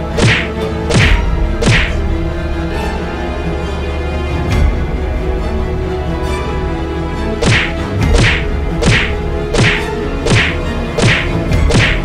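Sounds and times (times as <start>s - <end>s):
background music: 0.0s - 12.0s
swishing punch whacks: 0.1s - 2.0s, 7.4s - 12.0s.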